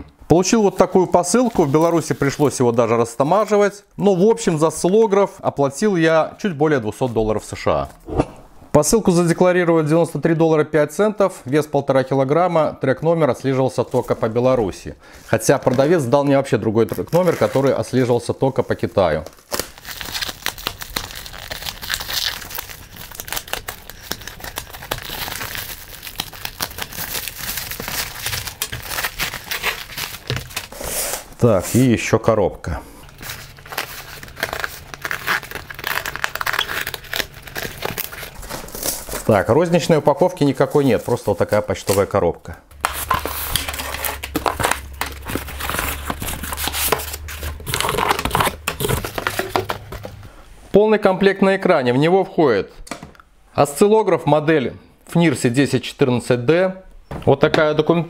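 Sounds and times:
plastic film crinkling: 0.5 - 3.6, 13.6 - 30.8, 33.0 - 50.3
plastic mailer tearing open: 16.9 - 18.0, 19.0 - 31.3, 33.0 - 42.1, 42.8 - 50.2.

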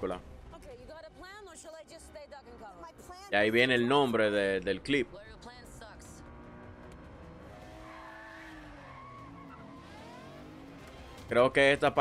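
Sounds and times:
road noise: 1.9 - 12.0
car engine revving hard: 6.3 - 11.3
tyres squealing: 7.6 - 10.9.

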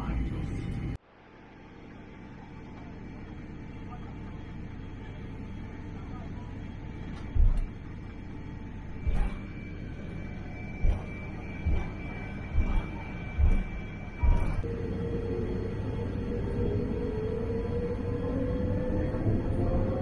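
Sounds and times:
aircraft cabin rumble: 0.0 - 1.0, 1.9 - 20.0
faint steady whine: 0.0 - 20.0
dull low thumps: 7.3 - 7.9, 8.9 - 14.6.

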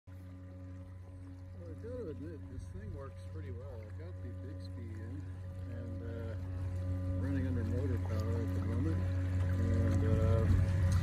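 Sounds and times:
electric motor humming: 0.1 - 11.0
man talking: 1.6 - 6.4, 7.1 - 10.6.

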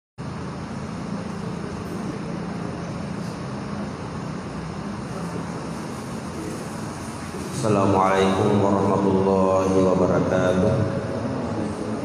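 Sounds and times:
low hum with hiss: 0.2 - 12.0.

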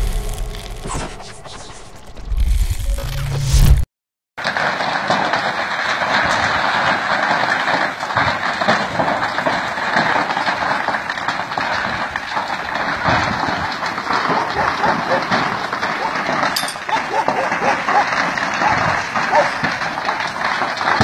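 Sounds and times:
large fire roaring and crackling: 0.0 - 3.8, 4.4 - 21.0.

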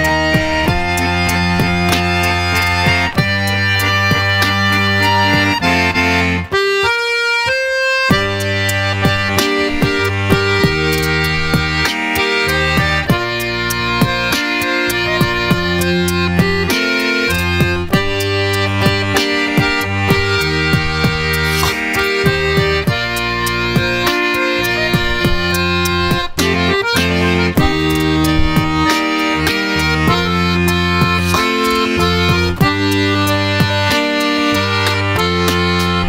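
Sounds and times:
button accordion playing rock tune: 0.0 - 36.0
sharp clicks on the beat: 0.0 - 36.0.

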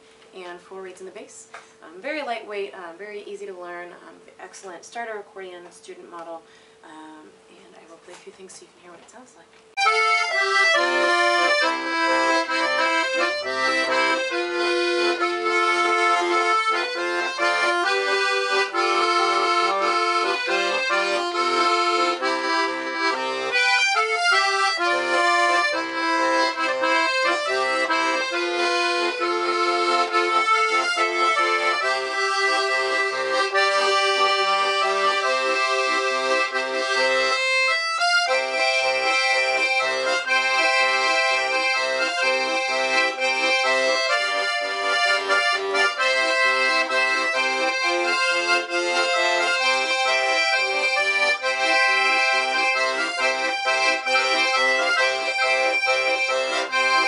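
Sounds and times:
accordion melody: 9.7 - 57.0.

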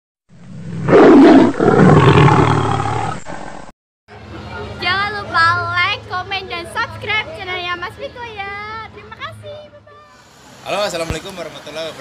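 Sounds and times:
big cat roaring: 0.5 - 3.7.

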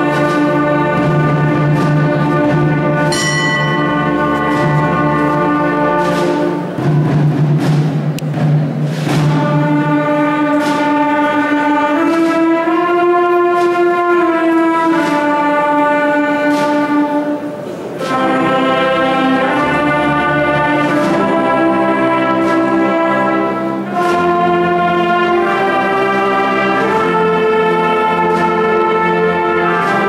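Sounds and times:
brass band playing slow chords: 0.0 - 30.0
light percussion strokes: 0.0 - 30.0.

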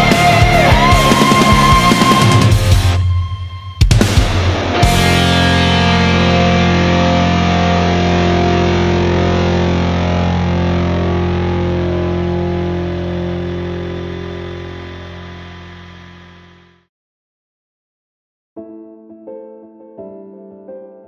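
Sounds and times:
distorted electric guitar chord: 0.0 - 16.9.

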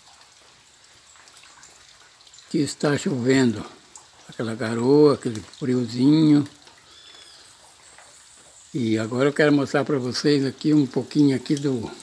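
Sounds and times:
drizzle falling on vegetation: 0.0 - 12.0.

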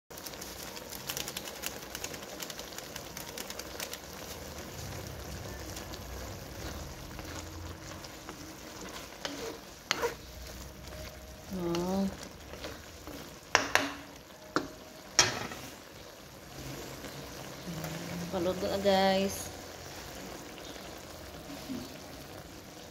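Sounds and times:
food sizzling in a wok: 0.1 - 22.9
wooden spatula scraping a pan: 4.2 - 14.1, 15.2 - 17.2, 18.4 - 22.4.

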